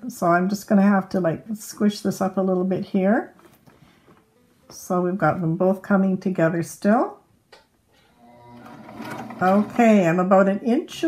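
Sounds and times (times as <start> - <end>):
sewing machine motor hum: 8.1 - 10.1.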